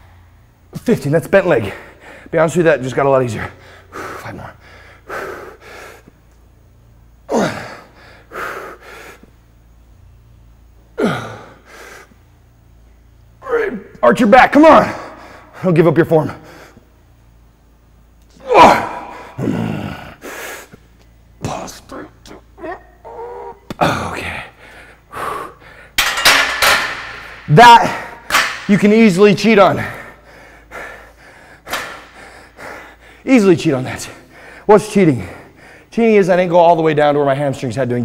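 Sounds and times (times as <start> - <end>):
man breathing quickly: 1.6 - 2.4, 3.6 - 6.3, 7.5 - 9.5, 11.1 - 12.4, 14.9 - 15.7, 16.4 - 17.2, 19.1 - 20.9, 23.4 - 26.0, 29.8 - 33.3, 34.0 - 35.9
man exhaling and groaning: 7.3 - 8.3, 11.0 - 11.8, 18.4 - 20.4, 21.4 - 25.7
man gasping breaths: 23.4 - 26.0, 29.8 - 33.3.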